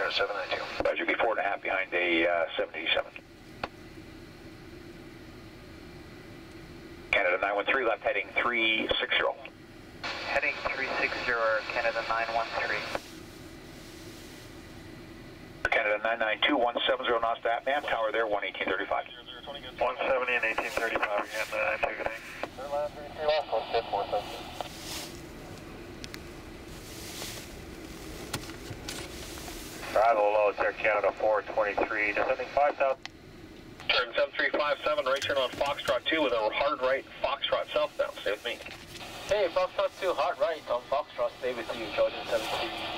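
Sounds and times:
radio hiss and hum: 0.0 - 42.9.

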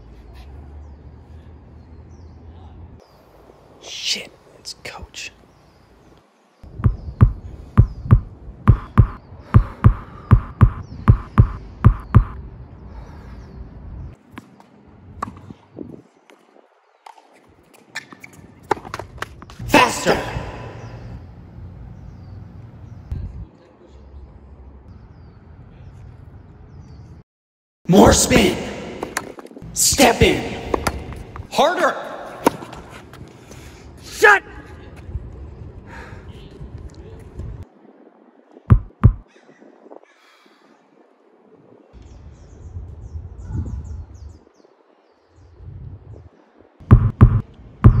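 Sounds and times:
low hum: 6.7 - 12.5, 46.8 - 48.0
loud heartbeat: 6.8 - 12.4, 38.7 - 39.2, 46.9 - 48.0
tennis racket striking ball: 30.6 - 31.5, 46.9 - 48.0.

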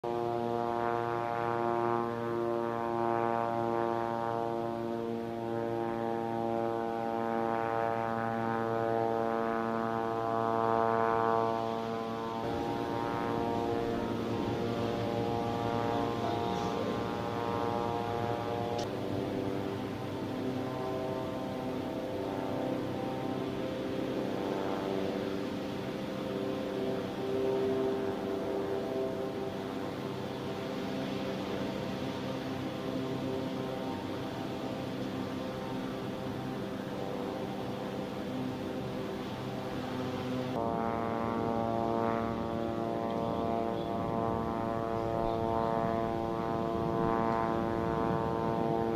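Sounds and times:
low droning hum: 0.1 - 48.9.

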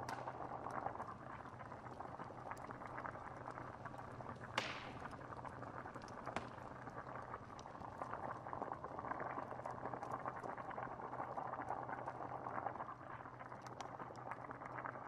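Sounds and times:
wood fire crackling: 0.0 - 14.4
stew bubbling: 0.0 - 15.0.

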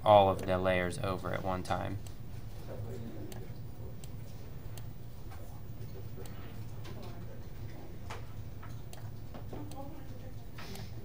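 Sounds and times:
steady low hum: 0.0 - 11.0
computer mouse clicks: 8.7 - 11.0.

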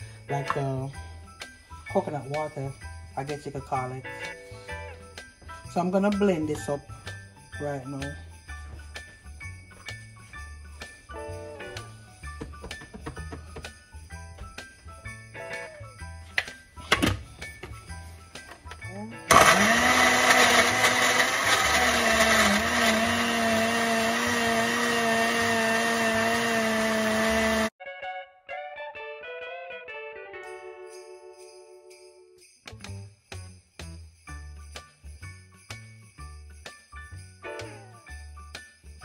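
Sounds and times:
festive holiday music with sleigh bells: 0.0 - 22.2, 30.3 - 39.0
blender motor whine: 19.3 - 27.7.

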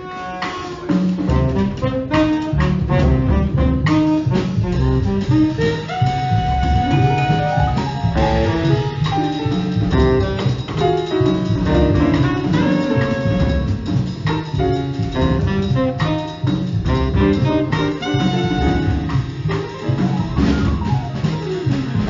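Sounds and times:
tenor saxophone long notes: 0.0 - 9.3, 11.7 - 14.0, 15.2 - 19.4
drum kit: 0.0 - 22.0
piano: 0.0 - 22.0
upright bass: 1.1 - 22.0.

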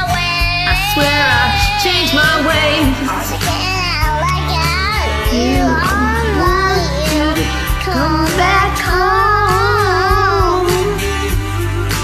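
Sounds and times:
child singing: 0.0 - 11.4
karaoke backing track: 0.0 - 12.0.

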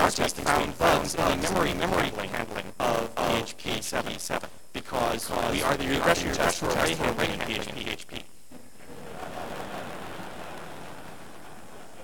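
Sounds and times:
man speaking: 0.0 - 8.3.

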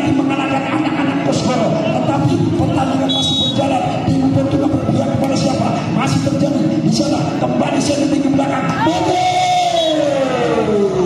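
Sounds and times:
referee's whistle blast: 3.1 - 3.7.

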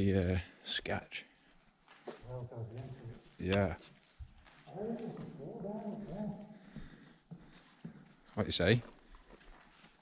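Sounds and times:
person's wordless wavering voice: 2.2 - 3.3, 4.7 - 6.6.

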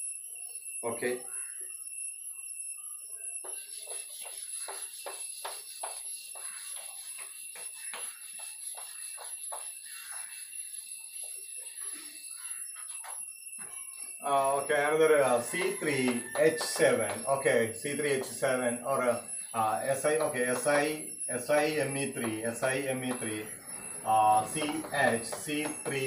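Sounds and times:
duster wiping chalkboard: 3.4 - 11.8.

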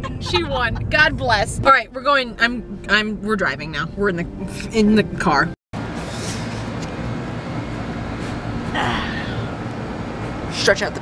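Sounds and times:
steady rushing noise outdoors: 0.0 - 3.0, 5.8 - 11.0.

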